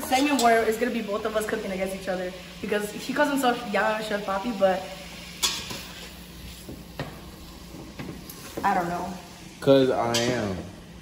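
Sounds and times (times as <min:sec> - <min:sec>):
frying pan sizzling: 0:00.0 - 0:11.0.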